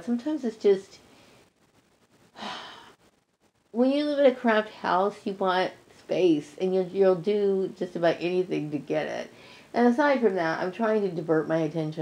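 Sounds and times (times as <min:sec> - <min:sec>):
woman sighing: 0:02.3 - 0:03.0.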